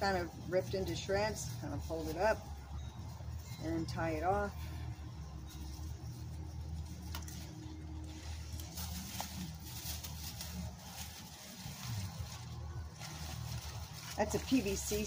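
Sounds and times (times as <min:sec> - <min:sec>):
low mechanical hum: 0:00.0 - 0:15.0
plastic bag crinkling: 0:05.5 - 0:15.0.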